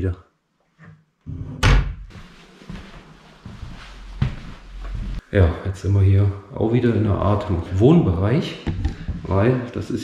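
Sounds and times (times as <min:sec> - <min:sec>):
wardrobe door banging shut: 0:01.6 - 0:02.1
shuffling footsteps: 0:02.1 - 0:05.3.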